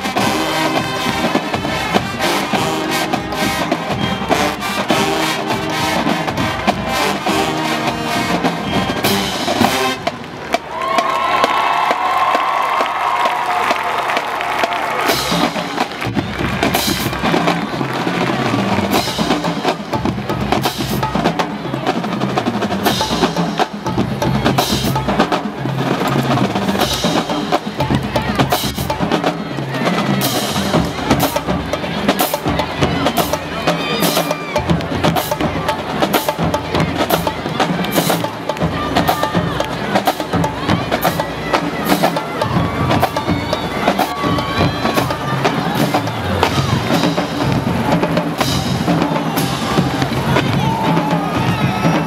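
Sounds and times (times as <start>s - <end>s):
marching drumline playing: 0.0s - 52.0s.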